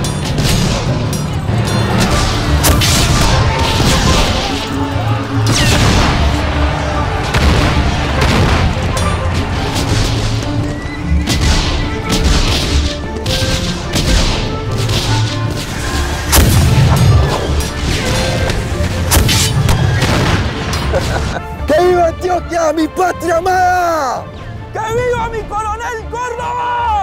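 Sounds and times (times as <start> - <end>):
musket shots: 0.0 - 21.4
background music: 0.0 - 27.0.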